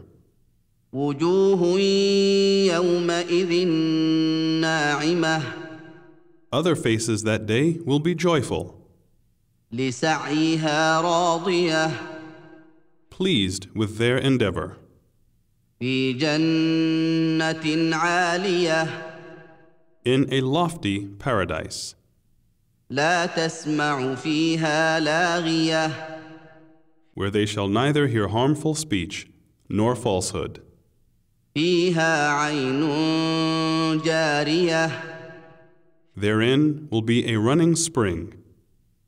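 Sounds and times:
person chanting recitation: 0.9s - 8.8s, 9.7s - 14.8s, 15.8s - 22.0s, 22.9s - 26.6s, 27.2s - 30.6s, 31.6s - 35.6s, 36.2s - 38.4s.

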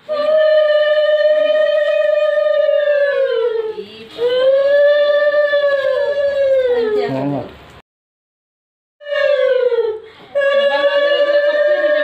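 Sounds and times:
breath: 10.0s - 10.4s.

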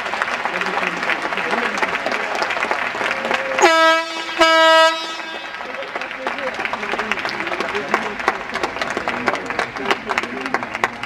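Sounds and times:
crowd applause: 0.0s - 11.0s
horn blasts: 3.6s - 6.3s.

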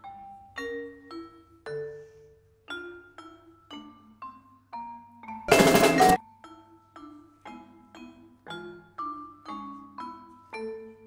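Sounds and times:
loud percussion crash: 5.5s - 6.2s
marimba notes: 5.5s - 6.2s.

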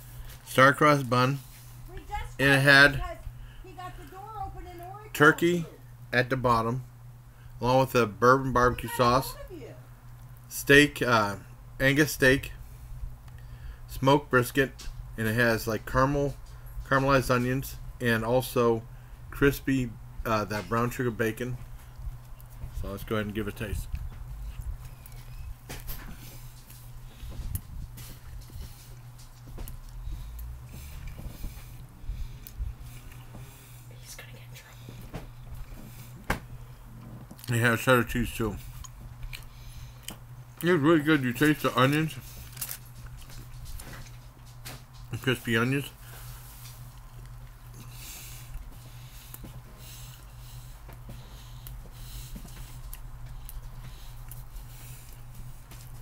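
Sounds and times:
low steady hum: 0.0s - 56.0s
man chewing sandwich: 21.6s - 37.6s, 38.2s - 56.0s
wet mouth chewing clicks: 38.7s - 40.2s.

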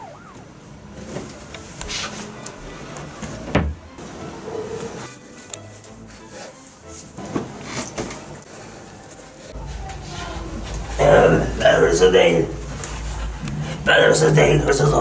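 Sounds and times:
faint background music: 0.0s - 15.0s
rustling: 0.9s - 14.0s.

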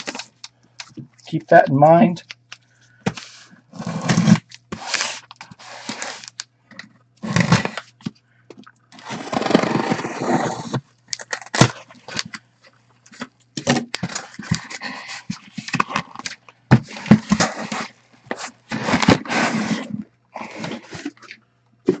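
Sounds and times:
cardboard tearing: 3.7s - 6.4s, 7.2s - 7.9s, 9.0s - 12.2s, 16.8s - 21.2s.

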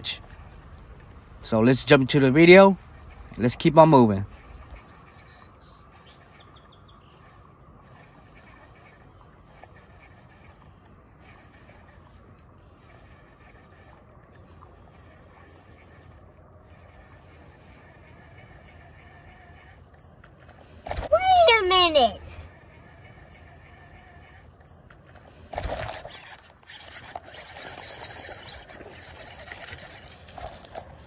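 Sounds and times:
faint high bird chirps: 4.3s - 7.4s.

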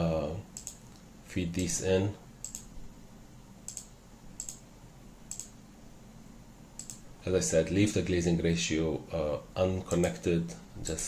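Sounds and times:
faint steady hiss: 0.0s - 11.0s
computer mouse clicks: 0.6s - 1.8s, 2.4s - 2.7s, 3.6s - 4.6s, 5.3s - 5.6s, 6.8s - 7.0s, 9.9s - 10.2s.

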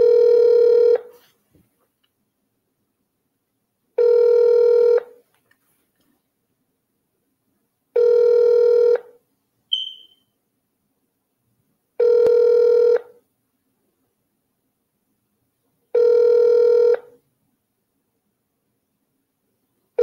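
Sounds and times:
phone ringback tone: 0.0s - 1.1s, 4.0s - 5.1s, 8.0s - 9.1s, 12.0s - 13.1s, 16.0s - 17.1s
short high chirp: 9.7s - 10.3s.

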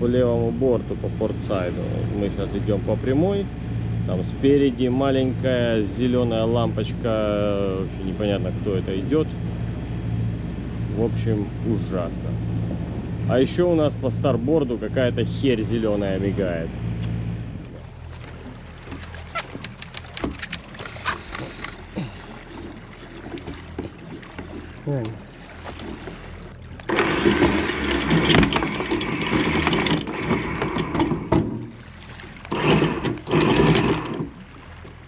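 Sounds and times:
boat engine idling: 0.1s - 28.1s
anchor chain rattling out: 18.8s - 21.8s
rapid clicks: 18.8s - 21.8s.

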